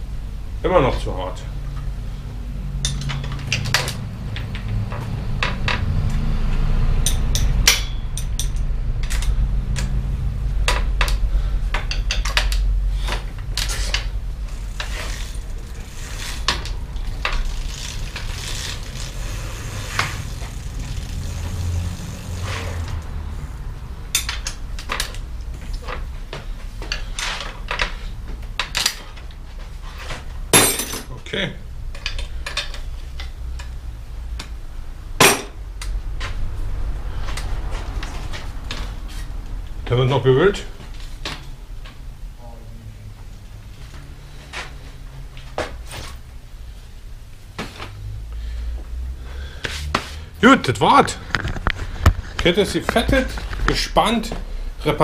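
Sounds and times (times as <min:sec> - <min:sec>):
bicycle chain and tools clinking: 0:02.7 - 0:10.0, 0:10.6 - 0:31.2, 0:31.9 - 0:33.8.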